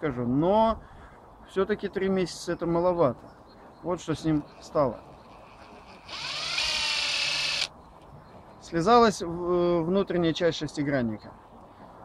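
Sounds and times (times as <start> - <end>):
impact driver motor whine: 5.2 - 7.7.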